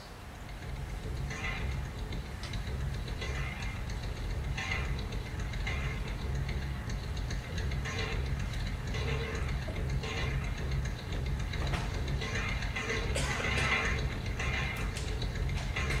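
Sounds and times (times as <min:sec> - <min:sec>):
low steady drone music: 0:00.0 - 0:16.0
soft ticking: 0:00.0 - 0:16.0.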